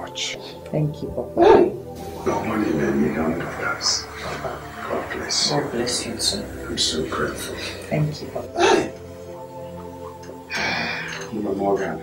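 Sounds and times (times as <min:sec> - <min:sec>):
soft film music: 0:00.0 - 0:12.0
breathy gasp: 0:10.5 - 0:11.3.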